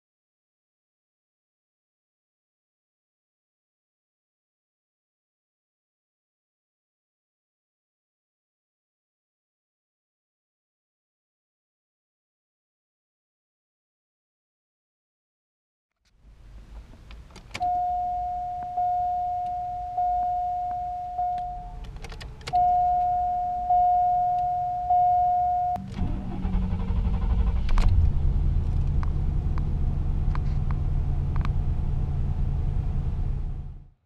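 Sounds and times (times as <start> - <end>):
car engine cranking and starting: 16.1 - 33.9
car engine idling: 16.1 - 33.9
car warning chime: 17.6 - 25.9.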